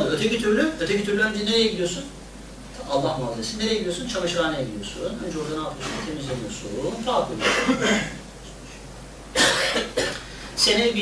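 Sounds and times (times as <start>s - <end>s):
faint room noise: 0.0s - 11.0s
person coughing: 7.4s - 8.2s, 9.4s - 10.2s.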